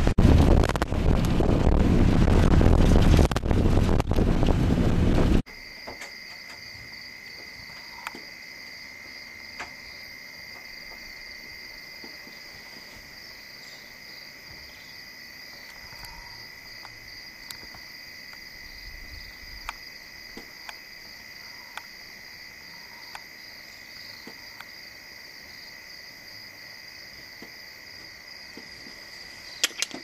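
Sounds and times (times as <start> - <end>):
crickets chirring: 5.5 - 30.0.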